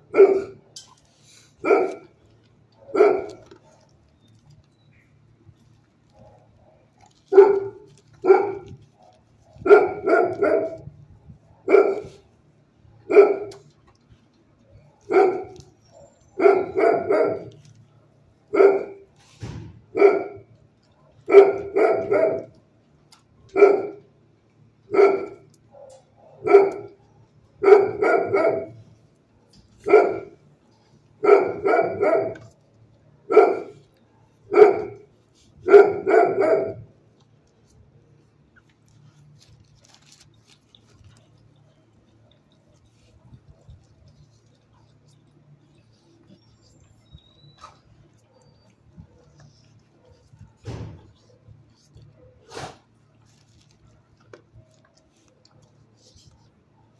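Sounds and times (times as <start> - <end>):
dog barking: 0.0 - 0.6, 1.6 - 2.2, 2.8 - 3.9, 6.2 - 10.9, 11.5 - 12.2, 13.0 - 13.7, 14.9 - 17.7, 18.4 - 19.1, 19.9 - 22.6, 23.5 - 24.1, 24.9 - 28.8, 29.8 - 30.4, 31.2 - 32.6, 33.2 - 36.9.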